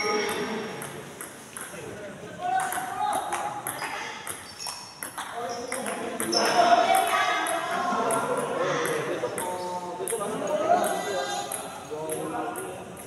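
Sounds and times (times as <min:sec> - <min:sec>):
sports shoes squeaking on court floor: 0:03.7 - 0:06.7.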